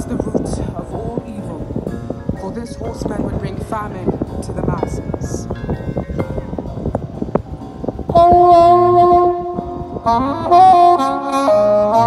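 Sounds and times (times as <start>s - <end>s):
marching band brass and woodwinds: 8.1s - 12.0s.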